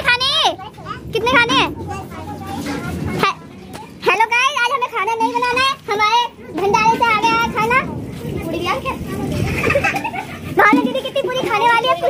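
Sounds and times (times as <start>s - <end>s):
children and women talking: 0.0s - 12.0s.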